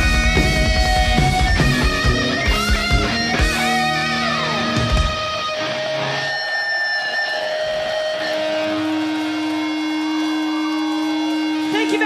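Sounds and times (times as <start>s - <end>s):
electric guitars holding notes: 0.0s - 12.0s.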